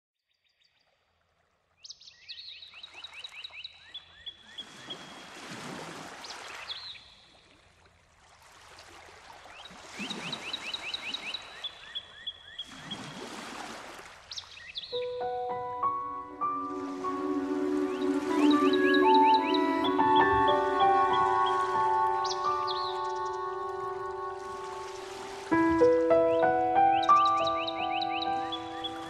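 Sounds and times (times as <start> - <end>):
rushing water-like noise: 8.0 - 11.8, 12.6 - 14.6, 16.4 - 27.5
birds chirping: 14.3 - 29.0
soft sustained music notes: 15.0 - 29.0.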